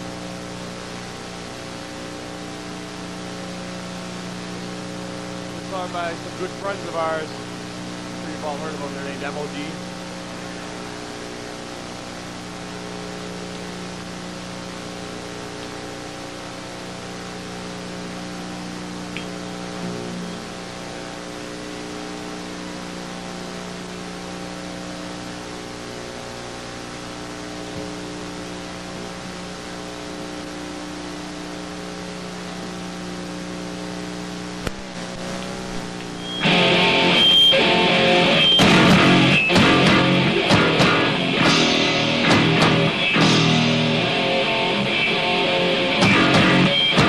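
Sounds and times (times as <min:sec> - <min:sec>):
electrical hum from amplifiers: 0:00.0 - 0:47.0
tape hiss: 0:00.0 - 0:47.0.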